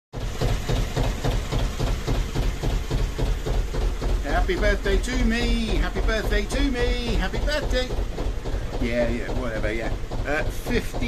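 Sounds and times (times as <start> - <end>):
diesel engine idling: 0.2 - 11.0.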